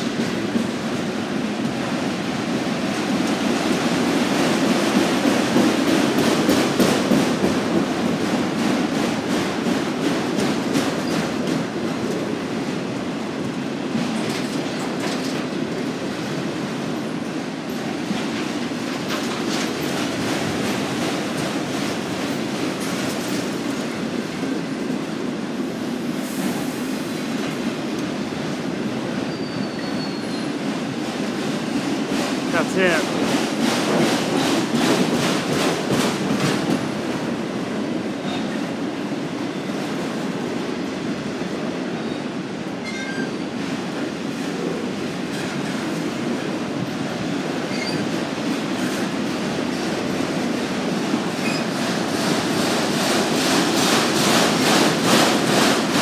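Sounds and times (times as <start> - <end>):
wheels clickety-clack on rail joints: 0.0 - 56.0.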